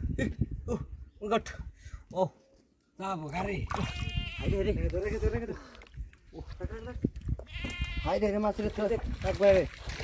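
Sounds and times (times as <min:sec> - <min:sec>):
fish thrashing in water: 0:09.0 - 0:10.0.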